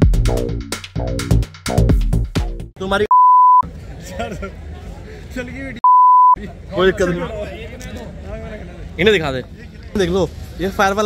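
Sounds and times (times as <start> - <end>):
steady bleep tone: 3.1 - 3.6, 5.8 - 6.4
crowd chatter: 3.6 - 5.8, 6.4 - 11.0.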